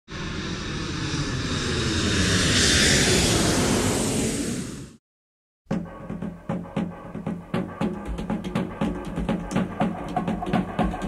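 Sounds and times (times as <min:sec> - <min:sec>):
airplane fly-by: 0:00.1 - 0:05.0.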